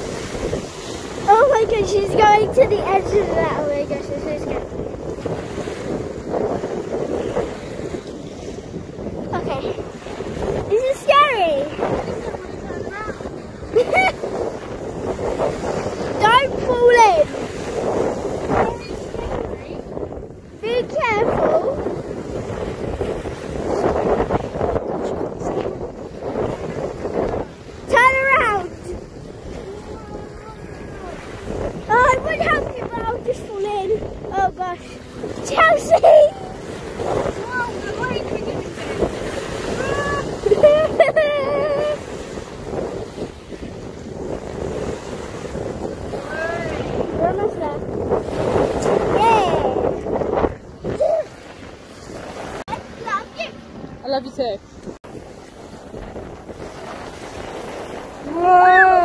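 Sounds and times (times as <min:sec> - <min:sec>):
small waves washing: 0:00.0 - 0:59.0
water lapping against wood: 0:00.0 - 0:59.0
wind buffeting microphone: 0:00.0 - 0:59.0.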